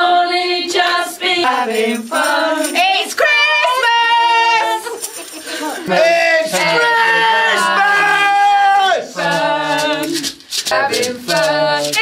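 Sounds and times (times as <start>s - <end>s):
young voices singing pop song: 0.0s - 12.0s.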